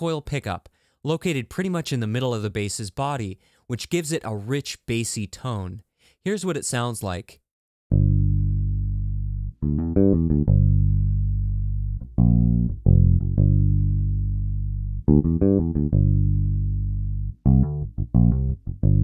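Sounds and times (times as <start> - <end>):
electric bass solo: 7.9 - 19.0.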